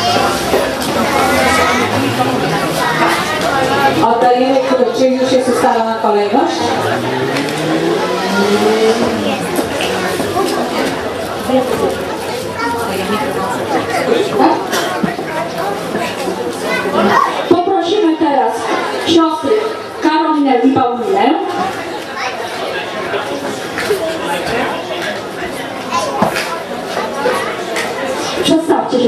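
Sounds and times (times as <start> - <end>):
voices chattering: 0.0 - 29.0
engine hum rising in pitch: 0.2 - 14.1.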